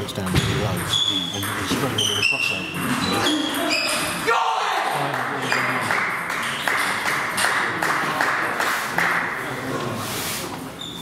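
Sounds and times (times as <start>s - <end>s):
table tennis balls clicking: 0.2s - 4.2s, 5.3s - 8.4s.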